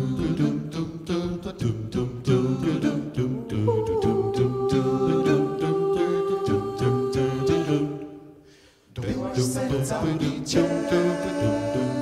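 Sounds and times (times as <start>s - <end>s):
a cappella group singing: 0.0s - 12.0s
vocal percussion beat: 0.0s - 12.0s.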